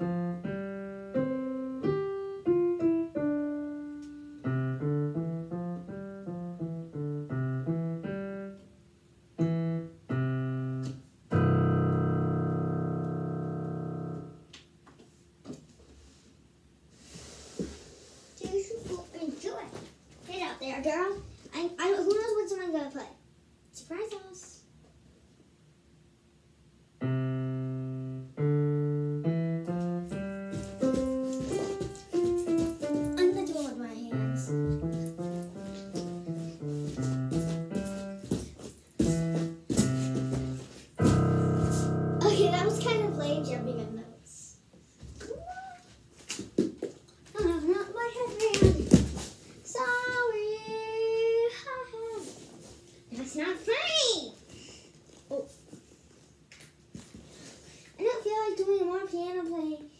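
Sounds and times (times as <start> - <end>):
digital piano melody: 0.0 - 14.5, 27.0 - 38.3, 39.0 - 44.2
many piano keys pressed at once: 9.4 - 14.5, 39.0 - 44.2
child's wavering voice: 45.2 - 46.0.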